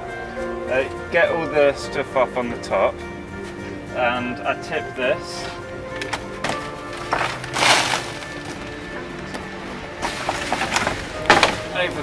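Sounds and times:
music with sustained tones: 0.0s - 12.0s
compost tipped from sieve: 6.5s - 8.7s.

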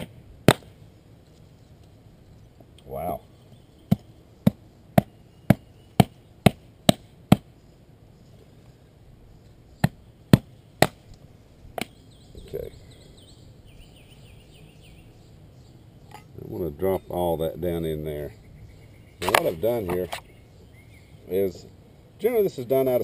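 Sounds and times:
axe chopping wood: 0.0s - 0.8s, 3.9s - 7.5s, 9.8s - 11.1s.

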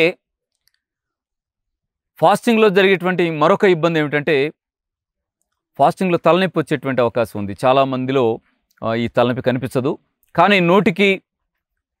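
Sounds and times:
man speaking: 2.2s - 4.5s, 5.8s - 11.2s.

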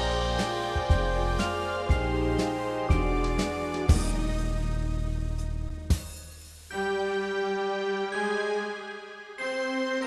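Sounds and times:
electronic organ chords: 0.0s - 5.7s.

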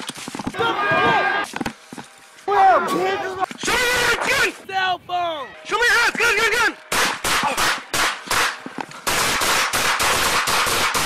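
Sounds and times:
handgun shots: 6.9s - 11.0s.

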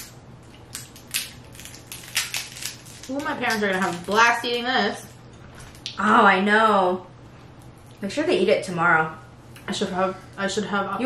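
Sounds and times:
crab shell cracking: 0.0s - 4.2s.

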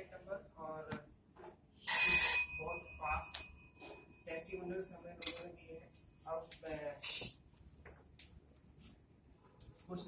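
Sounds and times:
small bell ringing: 1.9s - 4.3s.

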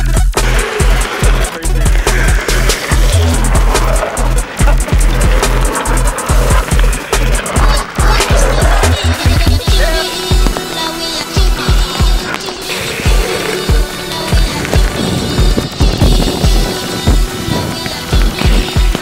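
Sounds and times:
electronic dub music with heavy bass: 0.0s - 10.6s
longboard wheels rolling on asphalt: 0.0s - 19.0s.

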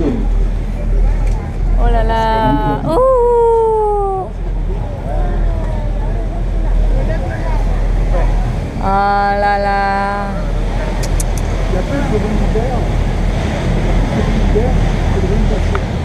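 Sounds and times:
boat engine low rumble: 0.0s - 16.0s.

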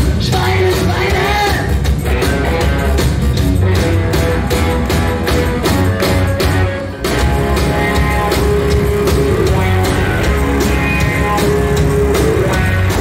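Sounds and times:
bass guitar: 0.0s - 13.0s
drum kit beat: 0.0s - 13.0s
electric guitar: 0.0s - 13.0s.

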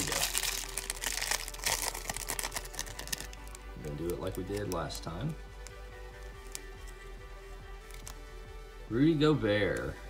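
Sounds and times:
foil wrapper crinkling: 0.0s - 7.0s, 7.8s - 8.2s.

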